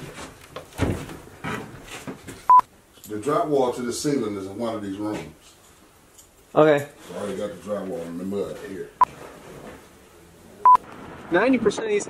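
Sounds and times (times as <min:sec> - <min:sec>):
faint knocks and rustles: 0:00.0 - 0:03.2.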